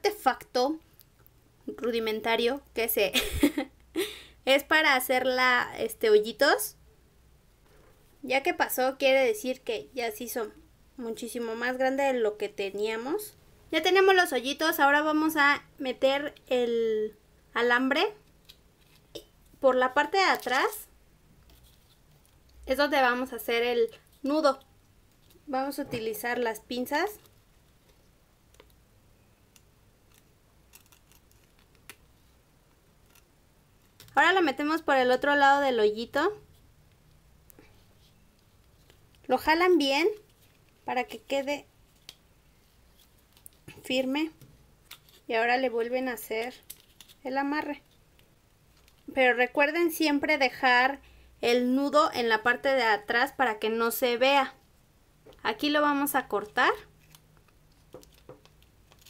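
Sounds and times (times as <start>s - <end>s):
pliers twisting wire clicks: 29.6s - 31.6s.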